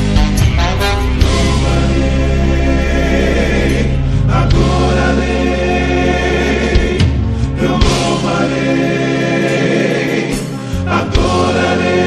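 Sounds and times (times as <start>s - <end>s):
sustained chords: 0.0s - 10.1s
steady bass: 0.0s - 12.0s
choir of backing voices: 0.1s - 12.0s.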